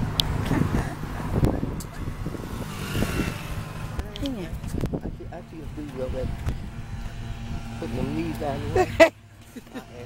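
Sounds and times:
car passing: 0.0s - 10.0s.

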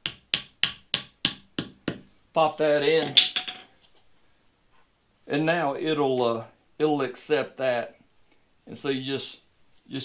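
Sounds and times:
rubber mallet tapping: 0.0s - 2.1s.

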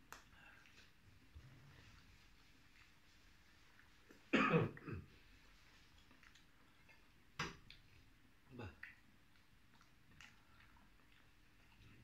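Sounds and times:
man coughing: 4.3s - 5.0s.

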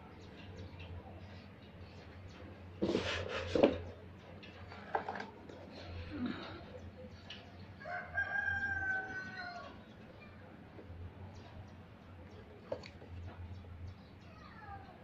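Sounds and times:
knocks and handling noise: 2.8s - 5.8s.

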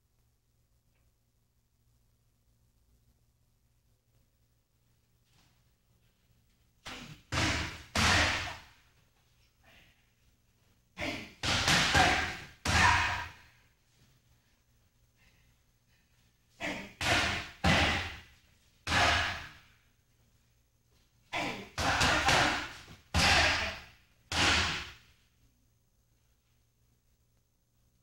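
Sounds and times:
kicks and punches hitting pads: 6.9s - 8.6s, 11.4s - 13.4s, 17.0s - 18.2s, 21.8s - 25.0s.

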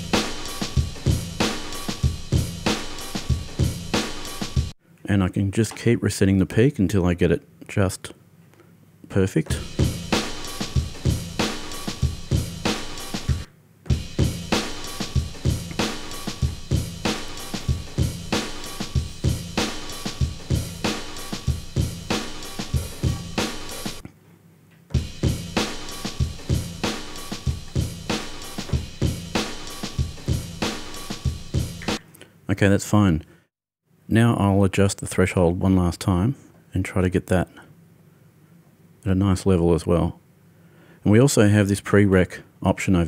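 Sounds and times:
drum kit loop: 0.0s - 4.8s, 9.4s - 24.1s, 24.9s - 32.0s.

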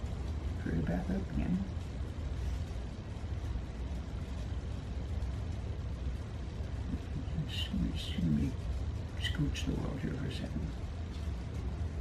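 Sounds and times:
room background rumble: 0.0s - 12.0s
man's voice: 6.9s - 8.6s.

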